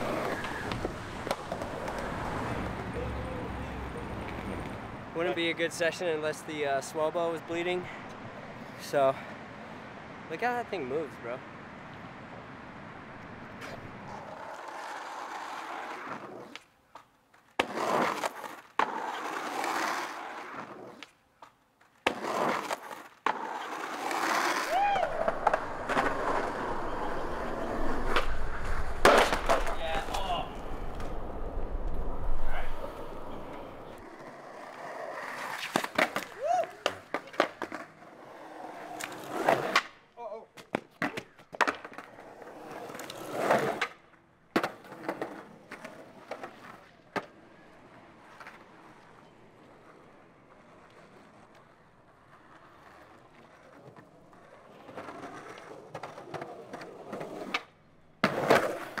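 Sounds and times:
skateboard clacking on ground: 0:00.0 - 0:03.3, 0:04.0 - 0:05.4, 0:13.5 - 0:31.2, 0:31.8 - 0:59.0
skateboard wheels rolling on concrete: 0:00.0 - 0:59.0
voices calling out: 0:01.8 - 0:04.6.

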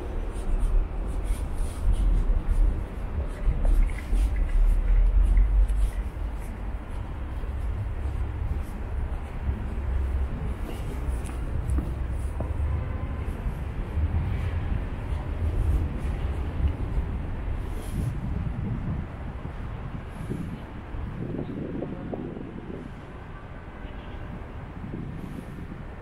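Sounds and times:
faint city ambience: 0:00.0 - 0:26.0
wind buffeting microphone: 0:00.0 - 0:26.0.

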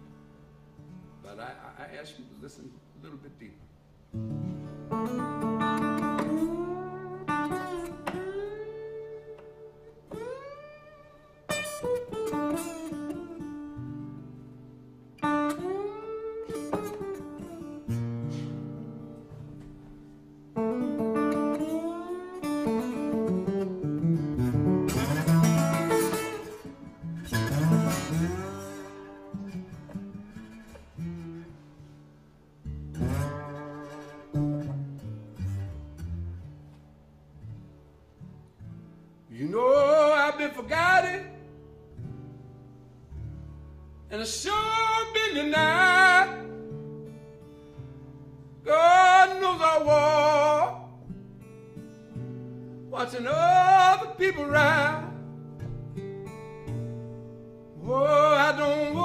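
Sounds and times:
acoustic guitar playing blues: 0:00.0 - 0:59.0.

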